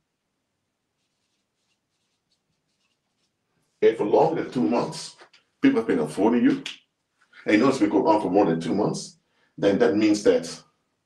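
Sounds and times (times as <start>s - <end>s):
marker squeaking on whiteboard: 1.0s - 3.4s.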